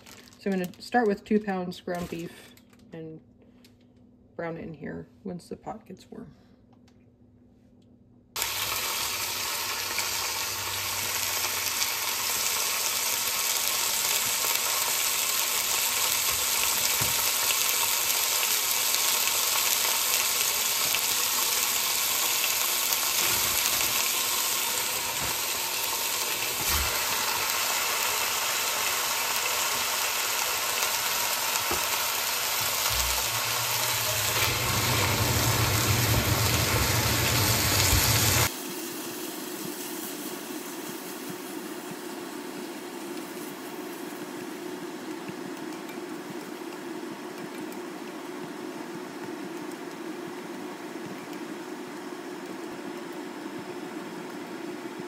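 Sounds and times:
meat sizzling in a pot: 8.4 - 45.5
low rumble: 32.9 - 38.5.

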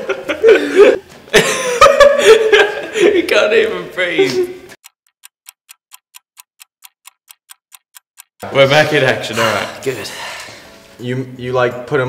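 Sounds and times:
clock ticking: 4.8 - 9.4.

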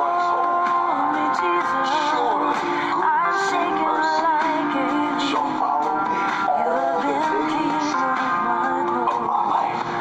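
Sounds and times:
sustained musical accompaniment: 0.0 - 10.0.

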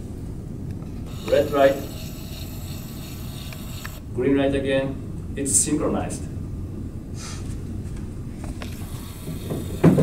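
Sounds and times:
electric motor humming and whining: 1.0 - 4.1, 8.6 - 10.0.

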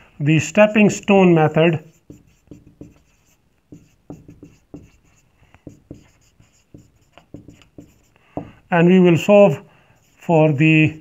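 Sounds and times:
marker writing on whiteboard: 1.7 - 9.3, 10.0 - 11.0.

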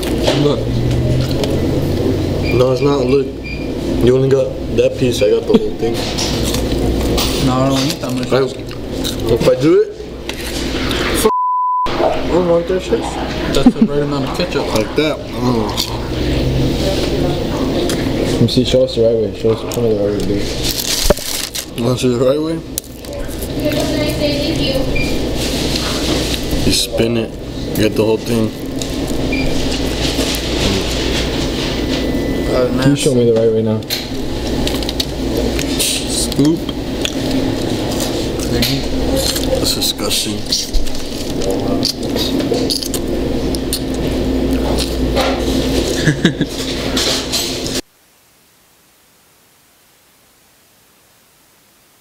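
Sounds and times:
steady low hum: 0.0 - 52.0
indistinct chatter: 12.1 - 31.4, 32.3 - 46.0.

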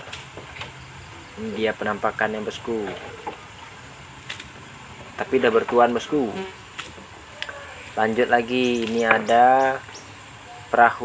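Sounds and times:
low outdoor background noise: 0.0 - 11.0.

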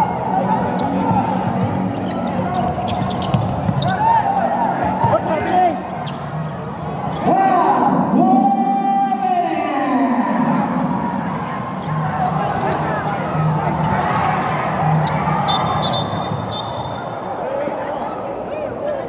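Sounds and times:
crowd voices shouting: 0.0 - 19.0.

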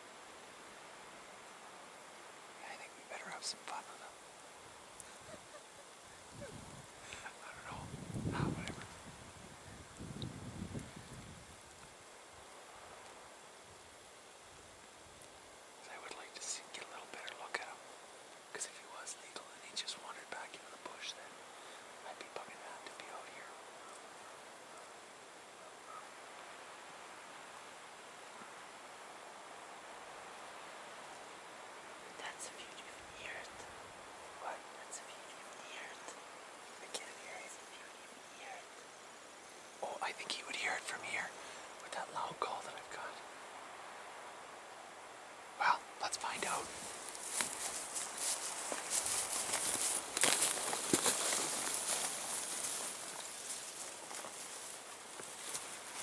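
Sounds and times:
person whispering: 2.6 - 4.2, 6.4 - 9.0, 15.8 - 17.8, 18.5 - 21.4, 22.0 - 23.6, 32.1 - 33.7, 34.4 - 38.7, 39.7 - 43.2, 45.6 - 46.9.

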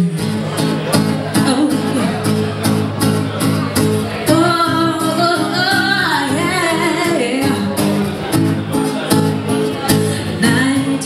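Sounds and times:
acoustic guitar strumming: 0.0 - 11.0
woman singing into microphone: 1.3 - 2.2, 4.2 - 11.0.

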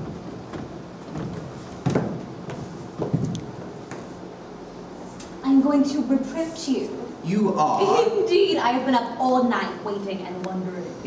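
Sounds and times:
thumps on wooden stage floor: 0.0 - 4.0.

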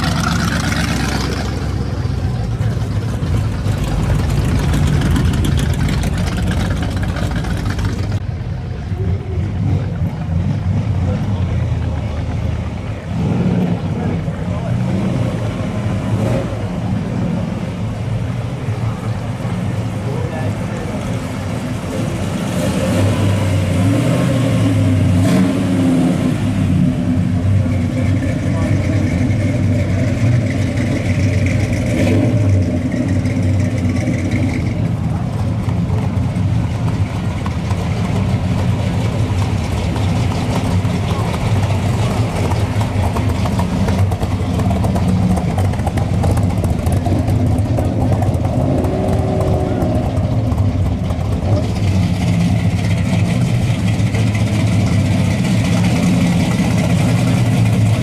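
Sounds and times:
car engines rumbling past: 0.0 - 58.0.

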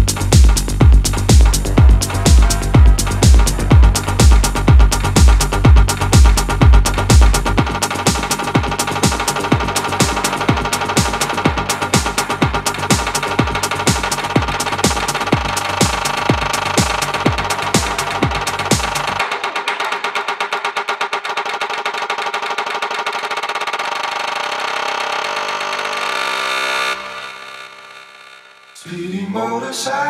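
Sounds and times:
kick drum beat: 0.0 - 19.2
synth chords: 0.0 - 19.6.

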